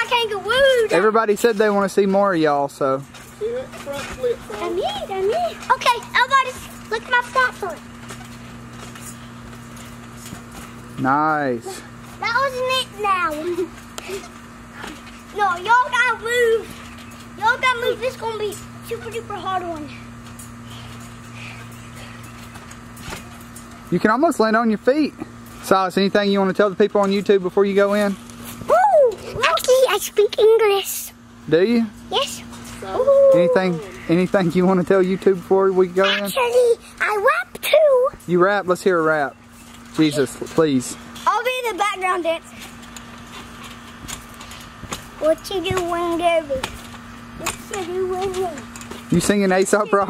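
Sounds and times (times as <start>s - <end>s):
steady low hum: 0.0s - 50.0s
trampoline thuds: 3.0s - 12.6s, 13.3s - 23.9s, 42.6s - 50.0s.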